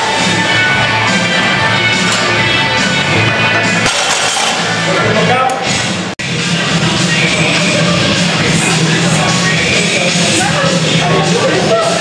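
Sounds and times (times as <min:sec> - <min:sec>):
rock music with vocals: 0:00.0 - 0:12.0.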